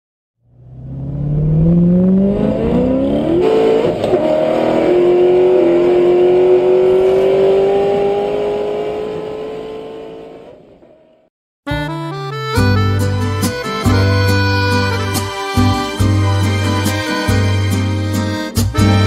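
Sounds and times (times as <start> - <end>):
vehicle engine accelerating: 0.4 - 11.2.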